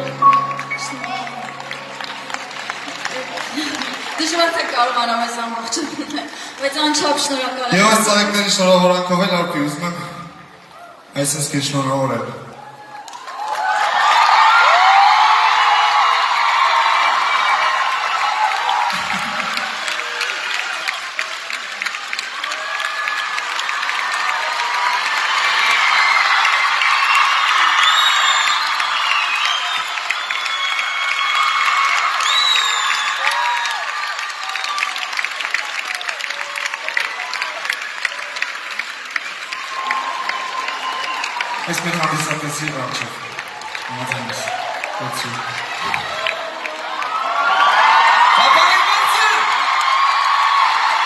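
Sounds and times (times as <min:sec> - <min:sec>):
crowd applauding and cheering: 0:00.0 - 0:51.0
high shouts: 0:44.2 - 0:51.0.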